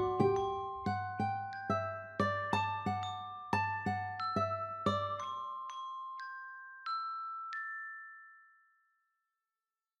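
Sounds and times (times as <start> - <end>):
bell-like chime note: 0.0 - 3.5.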